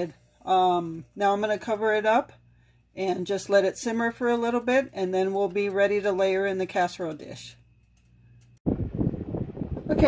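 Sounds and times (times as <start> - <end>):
tabletop fan running: 0.0 - 10.0.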